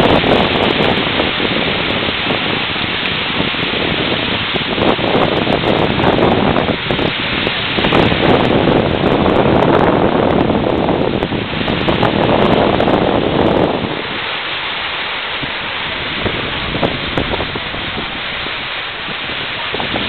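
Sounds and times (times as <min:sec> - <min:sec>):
surf breaking on a beach: 0:00.0 - 0:20.0
wind rumbling on microphone: 0:00.0 - 0:20.0.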